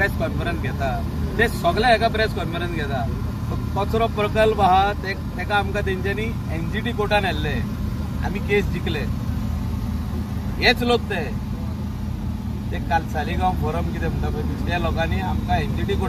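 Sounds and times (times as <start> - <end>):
people talking: 0.0 - 7.6, 8.2 - 9.1, 10.6 - 11.4, 12.8 - 16.0
engine idling: 0.0 - 16.0.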